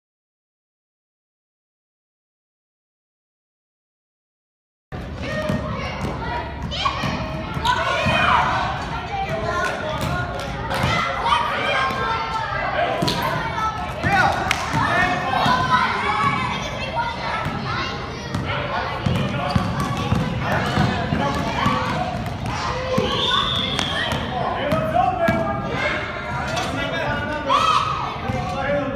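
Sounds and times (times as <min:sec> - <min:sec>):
basketball bouncing on court floor: 0:05.3 - 0:06.2, 0:18.3 - 0:25.4
children calling out: 0:10.7 - 0:24.2.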